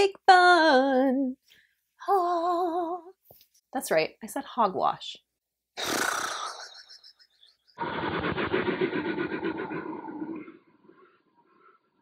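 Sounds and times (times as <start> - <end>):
dull rough sound effect: 7.8 - 12.0.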